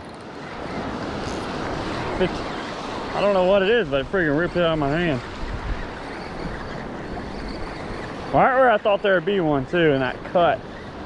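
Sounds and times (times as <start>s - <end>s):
wind on microphone: 0.0s - 8.4s
small waves washing over shallows: 0.2s - 11.0s.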